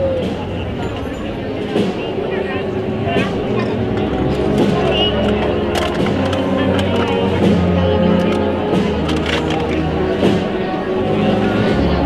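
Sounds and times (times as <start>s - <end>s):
crowd chatter: 0.0s - 12.0s
wind band sustained chords: 0.0s - 12.0s.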